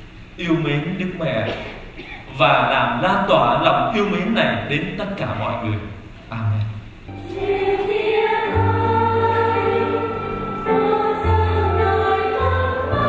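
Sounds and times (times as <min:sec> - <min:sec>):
low steady accompaniment: 0:03.4 - 0:13.0
choir singing a hymn: 0:07.1 - 0:13.0.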